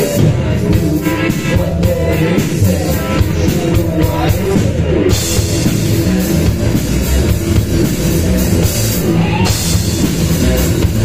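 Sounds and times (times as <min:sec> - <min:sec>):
distorted electric guitar: 0:00.0 - 0:11.0
drum kit with cymbals: 0:00.0 - 0:11.0
electric bass: 0:00.0 - 0:11.0.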